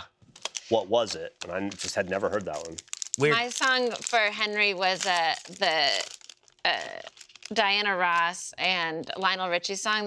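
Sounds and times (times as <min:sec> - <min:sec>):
foil wrapper crinkling and tearing: 0:00.3 - 0:00.8, 0:01.4 - 0:08.3
people talking: 0:00.7 - 0:06.0, 0:06.7 - 0:10.0.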